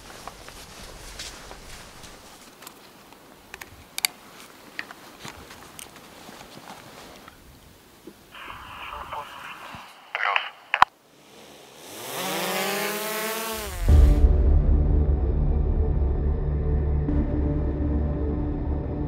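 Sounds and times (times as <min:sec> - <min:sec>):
soft clicks and rustles: 0:00.0 - 0:07.4
radio transmission with static: 0:08.3 - 0:11.0
music: 0:13.9 - 0:19.0.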